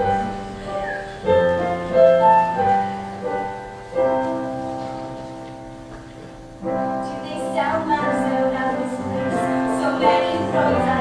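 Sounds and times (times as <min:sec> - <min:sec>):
piano chords: 0:00.0 - 0:11.0
woman singing: 0:07.0 - 0:11.0.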